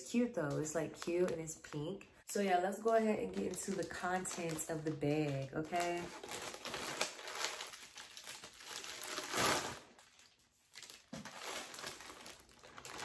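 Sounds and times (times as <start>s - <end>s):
plastic packaging crinkling: 0.0s - 13.0s.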